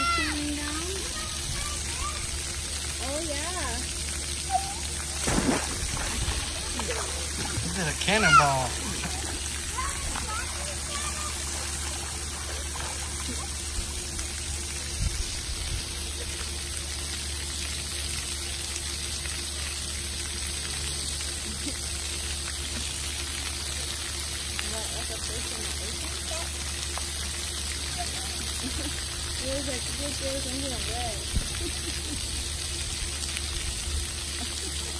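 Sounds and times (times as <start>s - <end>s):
water jets spraying and splashing: 0.0s - 34.9s.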